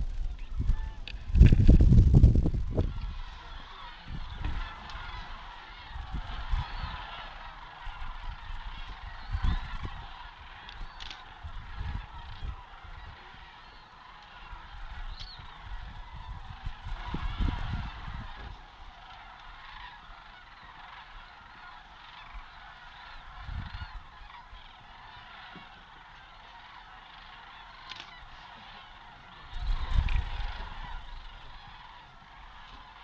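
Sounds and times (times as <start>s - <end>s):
low rumbling microphone noise: 0.0s - 3.3s
flock of cranes calling: 0.0s - 33.0s.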